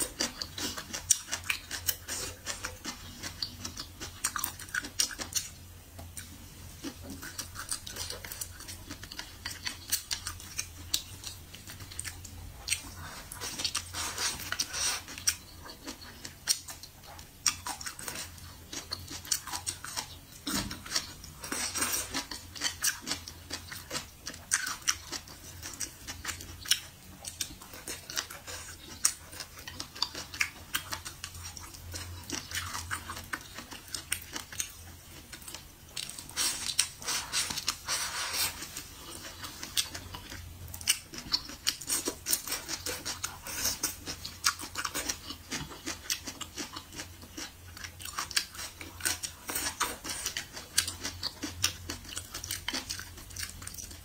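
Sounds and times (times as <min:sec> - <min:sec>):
close chewing of food: 0:00.0 - 0:54.0.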